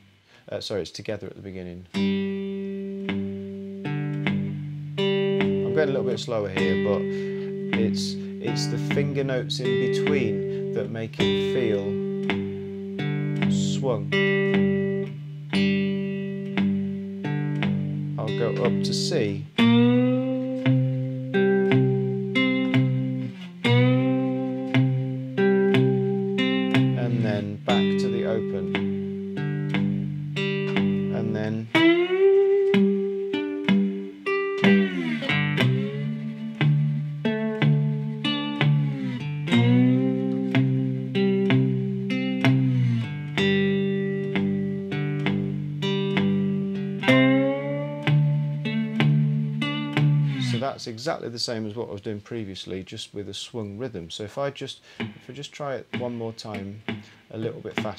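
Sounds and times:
slide guitar blues: 1.9 - 52.0, 54.4 - 57.9.

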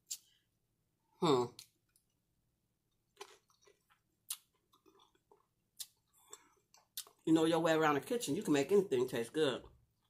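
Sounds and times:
close-miked chewing: 3.1 - 7.2
wet mouth clicks and smacks: 3.2 - 7.2.

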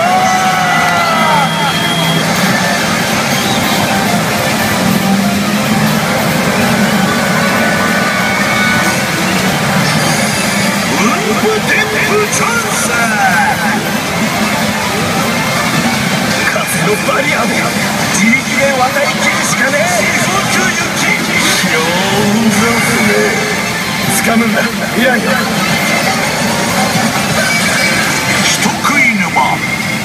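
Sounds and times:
pachinko electronic effects and music: 0.0 - 30.0
steady loud din: 0.0 - 30.0.

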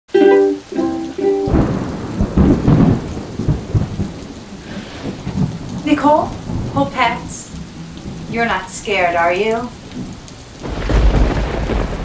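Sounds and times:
short pitched notes: 0.1 - 2.0
steady rain: 0.1 - 12.0
thunder rumbling: 0.7 - 12.0.

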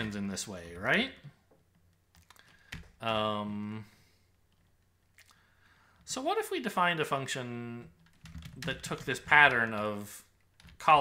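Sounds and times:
computer keyboard keystrokes: 2.0 - 3.0, 8.0 - 9.9.

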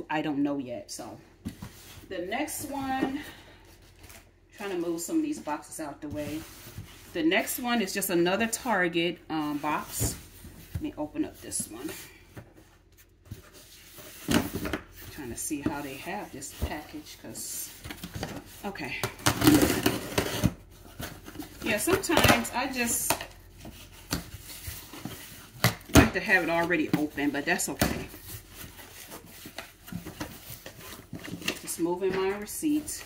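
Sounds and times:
cardboard packaging rustling: 19.3 - 33.0.

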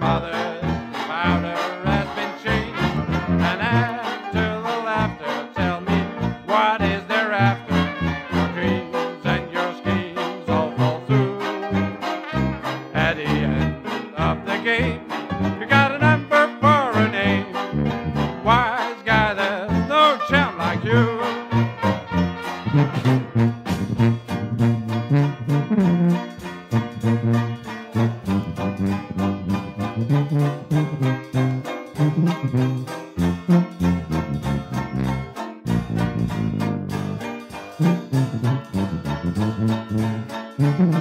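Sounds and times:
horns wavering melody: 0.0 - 41.0
traditional jazz band playing: 0.0 - 41.0.

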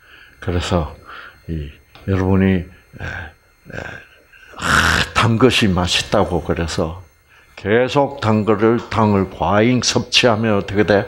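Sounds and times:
man speaking: 0.4 - 11.0
man's hesitant vocal sounds: 3.0 - 5.2.

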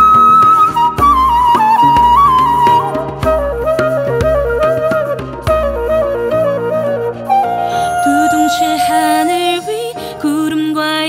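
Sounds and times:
bamboo flute melody: 0.0 - 10.0
low accompaniment: 0.0 - 10.6.

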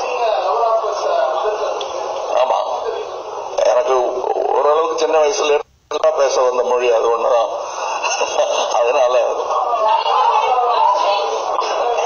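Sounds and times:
man talking into microphone: 3.6 - 7.6.

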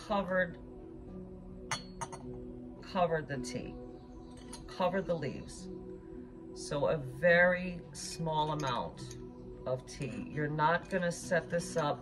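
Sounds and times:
soft background music: 0.0 - 12.0
glass clinking against china: 1.7 - 2.4, 4.3 - 4.8.

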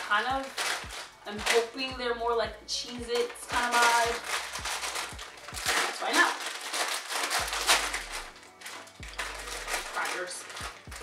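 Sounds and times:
crisp packet crinkling: 0.0 - 1.9, 2.8 - 11.0.

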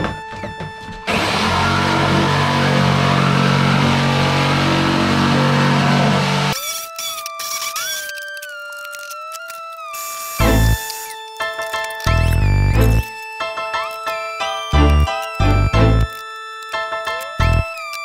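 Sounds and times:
electric jigsaw cutting plastic: 1.1 - 12.2
background music: 8.1 - 18.0.

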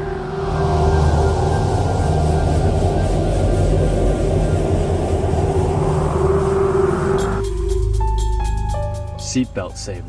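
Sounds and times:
held drone: 0.0 - 8.8
loud low rumble: 0.0 - 9.3.

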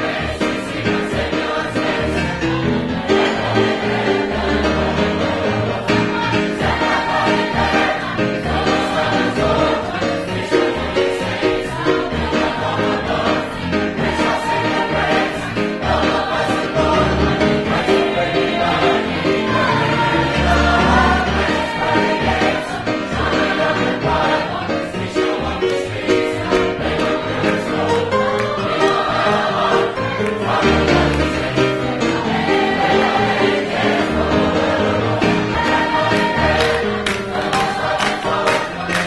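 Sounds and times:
mixed choir singing gospel: 0.0 - 39.0.

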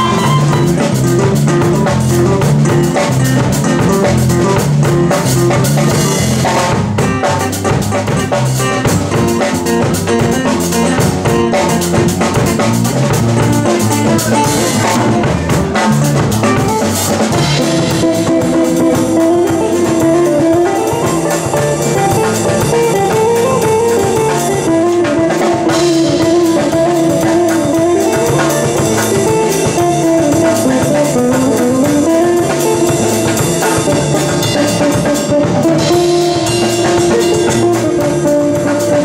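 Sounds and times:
drum kit: 0.0 - 39.0.

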